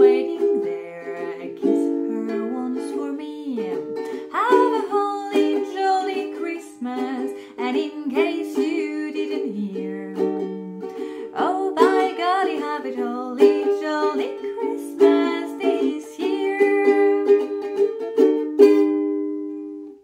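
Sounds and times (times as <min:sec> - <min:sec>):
woman singing: 0:00.0 - 0:18.0
ukulele strumming chords: 0:00.0 - 0:20.0.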